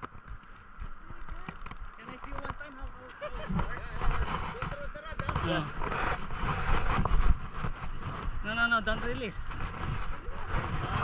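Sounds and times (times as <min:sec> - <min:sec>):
outdoor background noise: 0:00.0 - 0:11.0
indistinct voices talking: 0:00.3 - 0:05.8.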